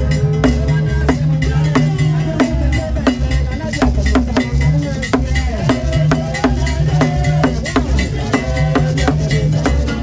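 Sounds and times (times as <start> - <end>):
sharp percussive strikes: 0.0 - 10.0
voices singing: 0.0 - 10.0.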